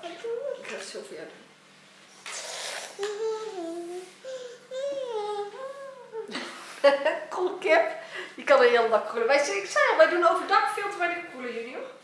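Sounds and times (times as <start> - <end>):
child humming: 2.4 - 6.4.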